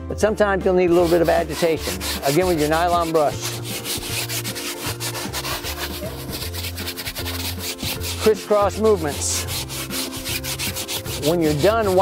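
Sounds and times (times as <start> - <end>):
brush scrubbing cloth seat: 0.9 - 12.0.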